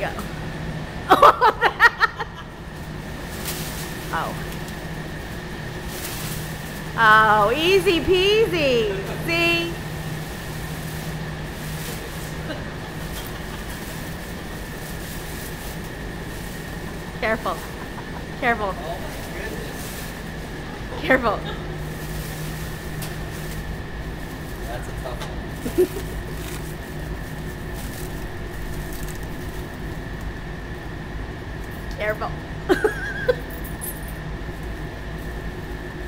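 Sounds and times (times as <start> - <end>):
low hum and rumble: 0.0 - 36.0
plastic wrap crinkling: 10.4 - 18.0, 25.5 - 30.3.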